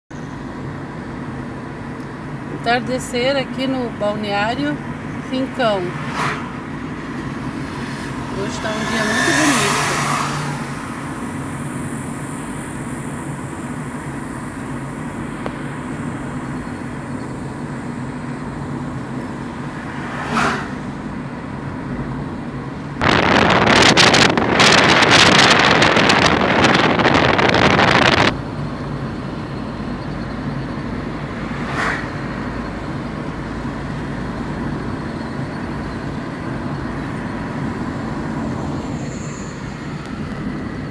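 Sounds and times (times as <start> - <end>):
vehicle engine and road noise: 0.1 - 40.9
brief whooshes: 6.0 - 6.6, 19.8 - 20.9, 31.4 - 32.4
loud wind rush: 22.4 - 28.4.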